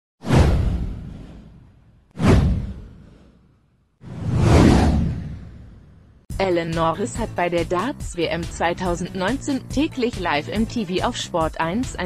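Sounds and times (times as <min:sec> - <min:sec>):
whoosh with low rumble: 0:00.2 - 0:06.3.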